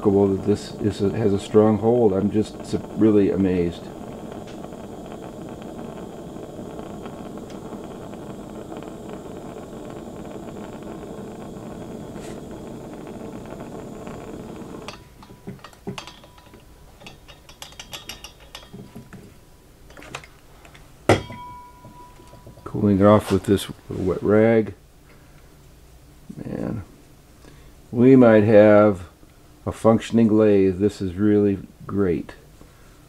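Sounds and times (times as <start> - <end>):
steady hiss: 0.0 - 33.0.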